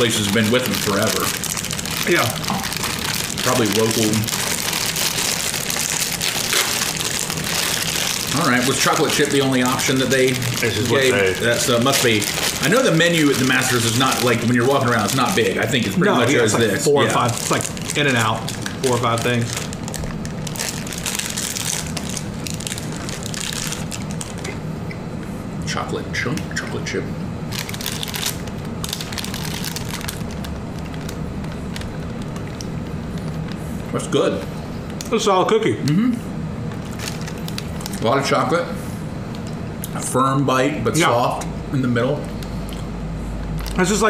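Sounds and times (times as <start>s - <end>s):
wrappers crinkling and tearing: 0.0s - 24.6s, 27.5s - 35.0s, 36.7s - 38.2s, 43.5s - 44.0s.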